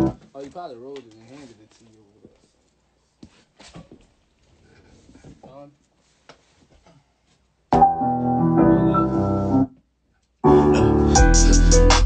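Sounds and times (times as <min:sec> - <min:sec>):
music track: 0:07.7 - 0:09.8, 0:10.4 - 0:12.0
piano-led music: 0:07.7 - 0:09.8, 0:10.4 - 0:12.0.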